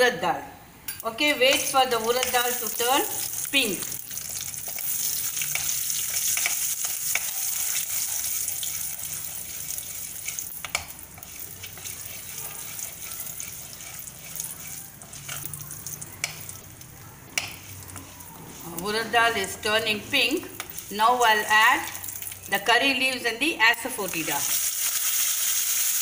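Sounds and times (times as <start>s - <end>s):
spatula stirring: 1.5s - 22.5s
seeds sizzling in oil: 1.6s - 22.7s, 23.7s - 26.0s.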